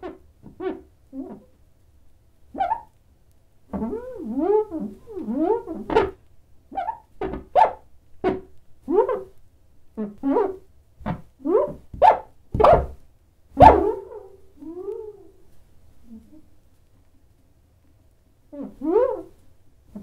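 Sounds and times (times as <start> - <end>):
squeaky cartoon yelps and chirps: 2.6 - 2.9, 3.8 - 7.8, 11.4 - 12.9, 13.6 - 15.3, 18.6 - 19.3.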